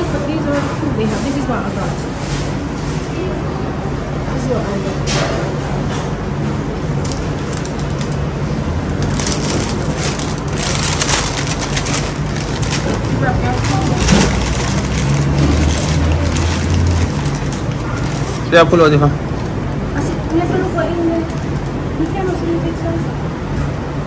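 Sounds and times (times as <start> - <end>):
paper wrapping crinkling: 6.9 - 19.6.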